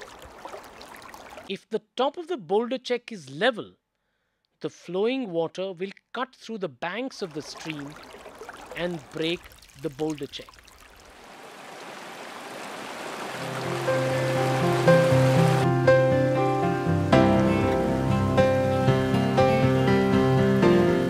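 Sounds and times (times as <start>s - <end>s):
rushing water hiss: 7.3s - 18.0s
plucked background music: 13.5s - 21.0s.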